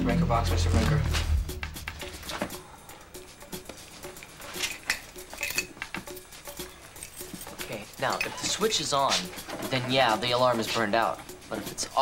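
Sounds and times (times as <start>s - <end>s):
tense background music: 0.0s - 4.3s
keys jingling: 3.9s - 9.5s.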